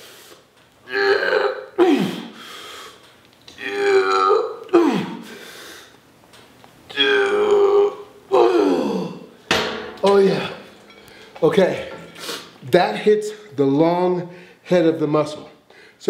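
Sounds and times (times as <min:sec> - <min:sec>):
man groaning with effort: 0:00.9 - 0:02.3, 0:03.6 - 0:05.2, 0:06.9 - 0:09.3.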